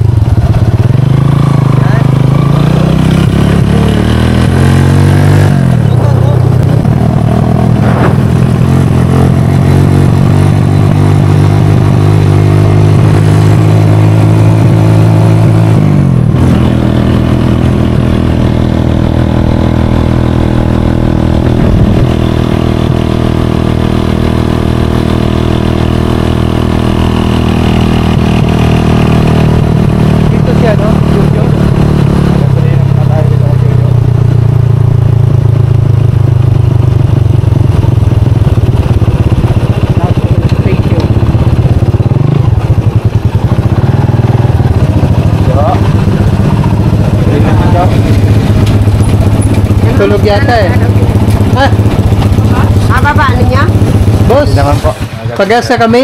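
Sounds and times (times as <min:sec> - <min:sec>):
small motorcycle engine: 0:00.0 - 0:56.0.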